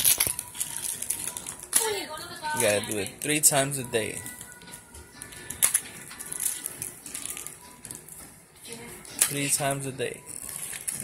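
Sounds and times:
plastic packaging crinkling: 0:00.0 - 0:08.2, 0:09.1 - 0:11.0.

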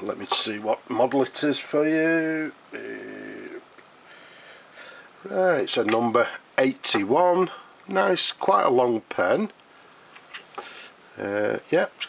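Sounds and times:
person humming hesitation: 0:02.7 - 0:03.8.

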